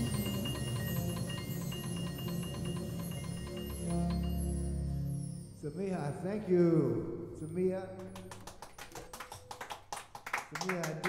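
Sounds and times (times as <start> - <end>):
people clapping: 8.0 - 11.0.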